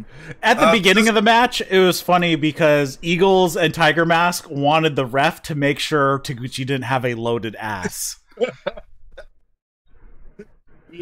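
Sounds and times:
people laughing: 0:00.0 - 0:01.2, 0:07.8 - 0:08.8
person speaking quietly: 0:00.4 - 0:01.1.

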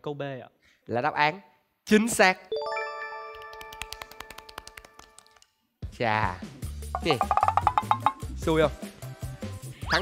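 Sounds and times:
rising bright chime tones: 0:02.5 - 0:04.2
rapid ticks of score counter: 0:07.0 - 0:08.2.

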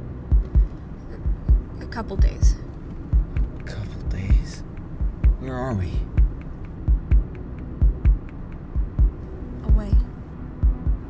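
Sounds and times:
low steady hum: 0:00.0 - 0:11.0
heartbeat thumps: 0:00.1 - 0:11.0.

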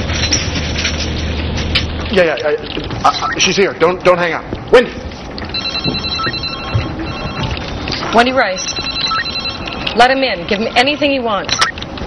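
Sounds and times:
electronic telephone ringing: 0:05.5 - 0:11.8.

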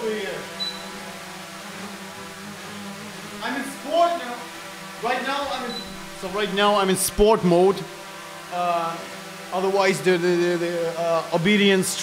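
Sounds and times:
drone propellers humming: 0:00.0 - 0:10.7
man's voice: 0:05.0 - 0:07.8.

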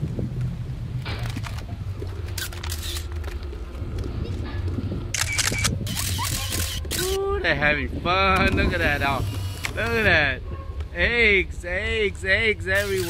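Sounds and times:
wind rumble on microphone: 0:00.0 - 0:13.0
microphone handling noise: 0:08.2 - 0:10.9.

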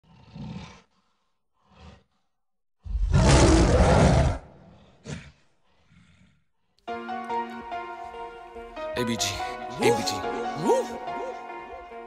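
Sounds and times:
gorilla roaring: 0:02.9 - 0:06.4.

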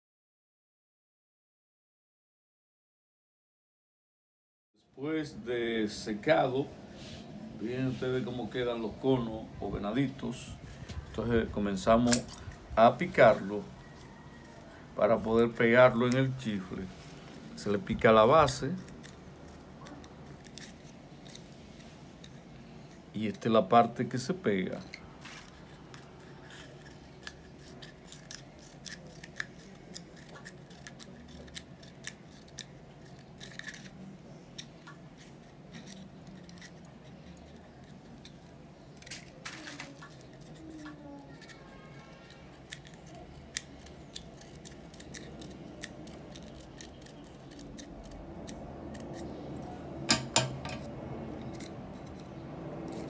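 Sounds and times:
scissors snipping paper: 0:11.0 - 0:53.0.

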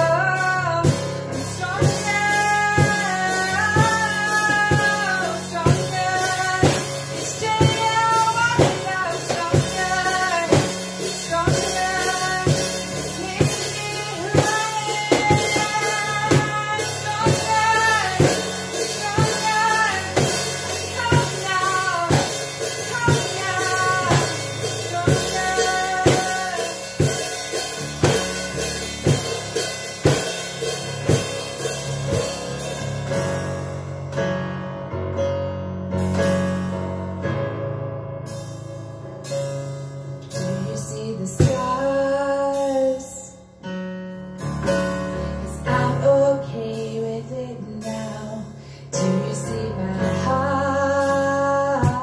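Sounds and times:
woman singing: 0:00.0 - 0:28.3, 0:40.3 - 0:43.5, 0:45.2 - 0:52.0
cajon beat: 0:00.0 - 0:33.2
digital piano: 0:00.0 - 0:52.0.

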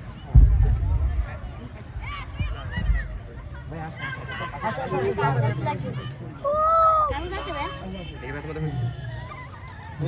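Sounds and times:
young children talking and calling out: 0:00.0 - 0:10.0.

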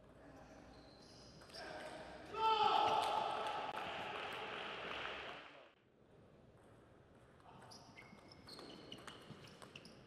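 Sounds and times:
clapping and cheering: 0:03.0 - 0:05.8.

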